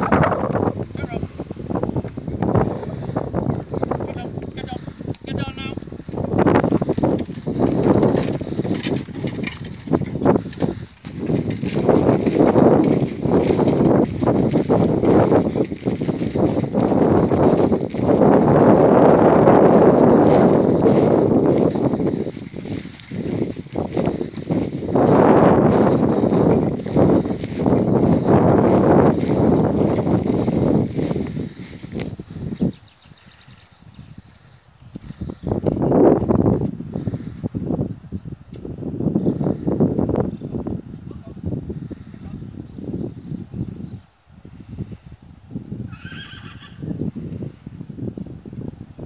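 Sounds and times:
wind buffeting microphone: 0:00.0 - 0:49.0
pony whinnying: 0:45.9 - 0:46.8.

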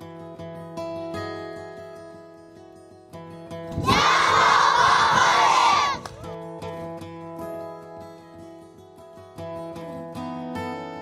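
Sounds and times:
children shouting and cheering: 0:03.7 - 0:06.3.

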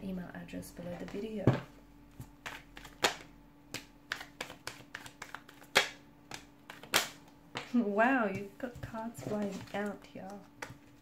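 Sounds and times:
cards being shuffled by hand: 0:02.2 - 0:11.0.

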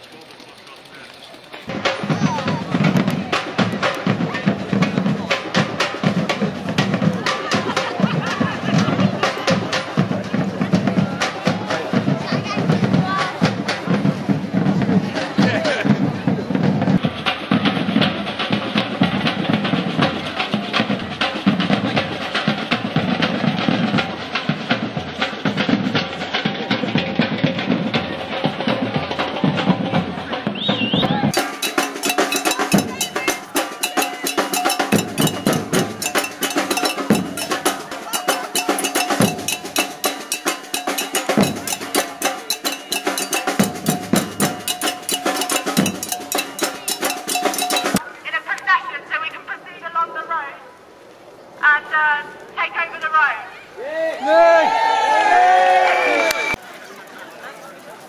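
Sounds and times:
street drum band playing: 0:00.0 - 0:50.0
snare drums: 0:01.6 - 0:48.0
bass drums: 0:01.7 - 0:48.0.

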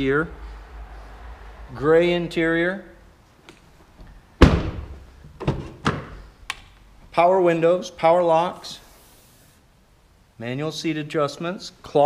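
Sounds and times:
car door slamming: 0:04.4 - 0:06.1.

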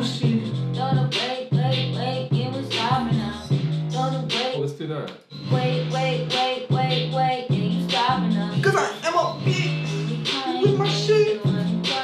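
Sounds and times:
bass: 0:00.0 - 0:12.0
wordless sung melody: 0:00.0 - 0:12.0.

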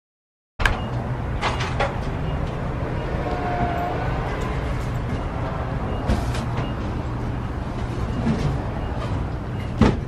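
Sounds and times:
low traffic rumble: 0:00.6 - 0:10.0.

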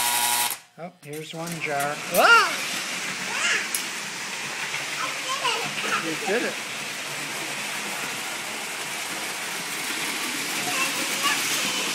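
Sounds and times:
toy train whirring: 0:00.0 - 0:11.9.

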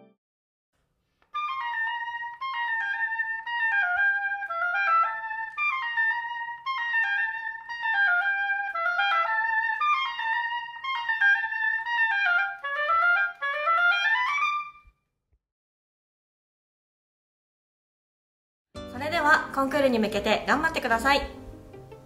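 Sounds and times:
solo oboe melody: 0:01.2 - 0:15.0.

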